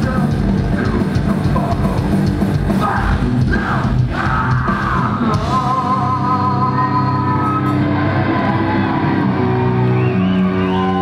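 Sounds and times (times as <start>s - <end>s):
rock band playing live: 0.0s - 11.0s
crowd shouting and whooping: 6.4s - 11.0s.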